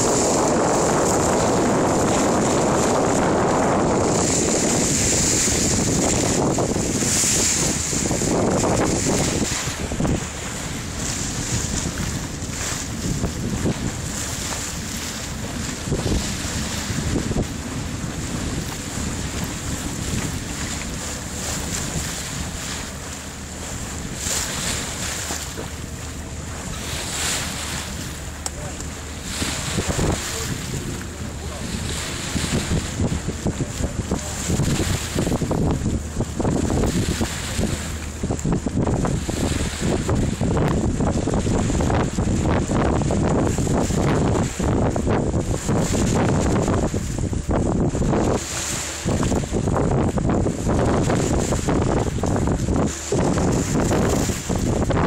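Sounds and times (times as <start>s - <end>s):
sea water washing: 0.0s - 55.0s
wind buffeting microphone: 0.0s - 55.0s.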